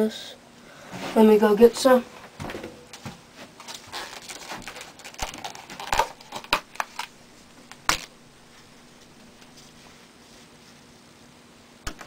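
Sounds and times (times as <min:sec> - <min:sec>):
rustling: 0:02.9 - 0:11.0.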